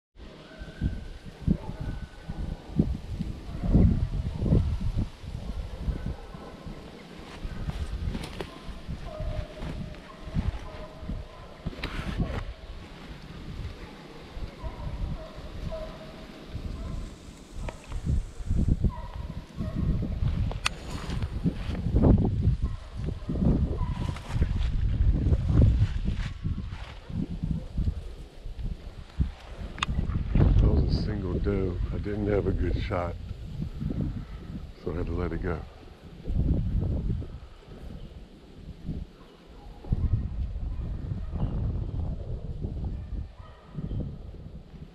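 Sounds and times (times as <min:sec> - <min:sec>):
wind buffeting microphone: 0:00.2 - 0:44.9.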